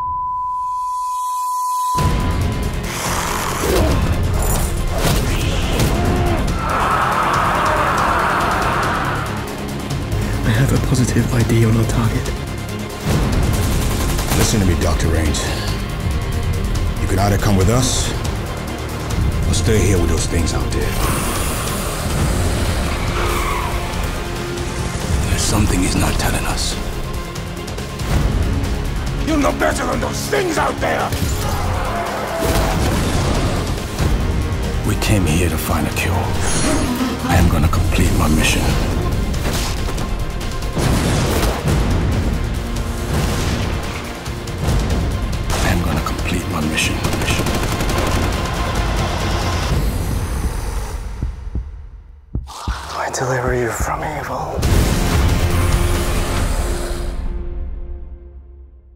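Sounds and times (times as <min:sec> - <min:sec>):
dense trailer score: 0:01.9 - 0:58.9.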